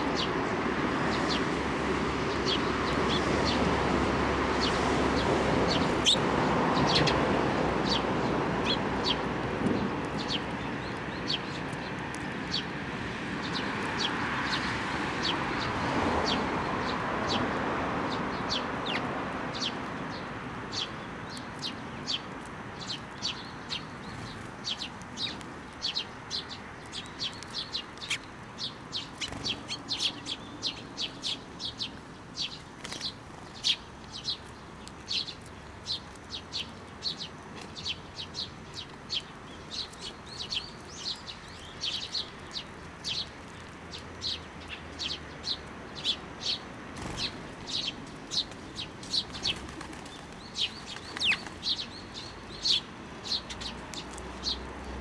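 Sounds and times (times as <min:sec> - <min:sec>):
sparrows chirping: 0:00.0 - 0:55.0.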